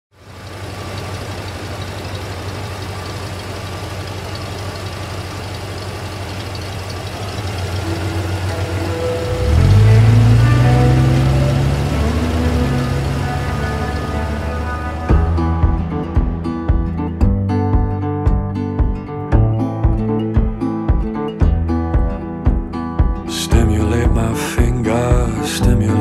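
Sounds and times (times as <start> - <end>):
truck engine idling and revving: 0.1 - 26.0.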